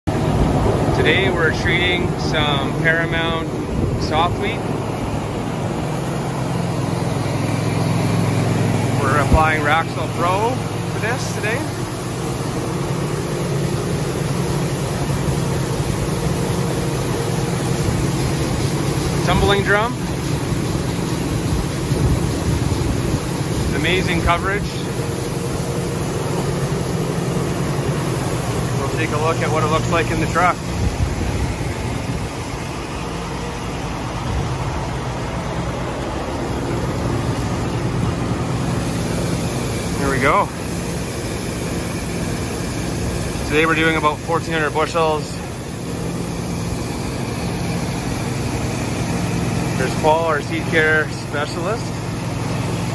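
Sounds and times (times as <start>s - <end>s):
seed treater machine drone: 0.1s - 52.9s.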